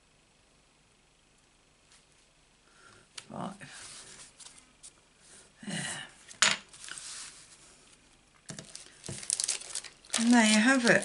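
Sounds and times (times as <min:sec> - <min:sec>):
soft card rustle: 0:03.2 - 0:05.0, 0:06.7 - 0:11.0.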